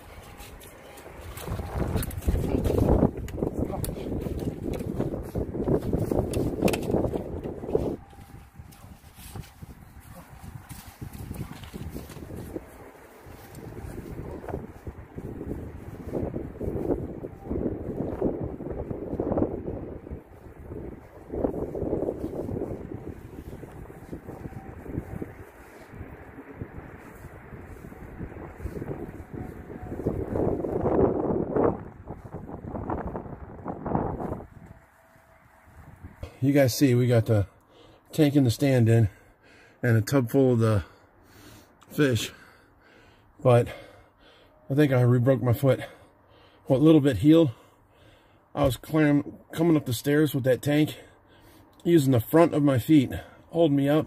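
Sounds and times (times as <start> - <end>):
wind buffeting microphone: 0.0 - 37.4.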